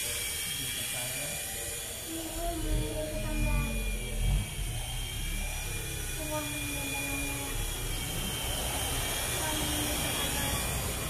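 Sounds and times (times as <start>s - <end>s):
rc helicopter rotors whining: 0.0s - 11.0s
low rumble: 2.2s - 9.3s.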